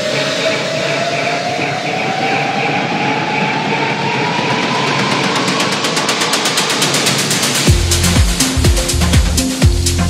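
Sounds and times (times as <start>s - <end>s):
noise wash: 0.0s - 10.0s.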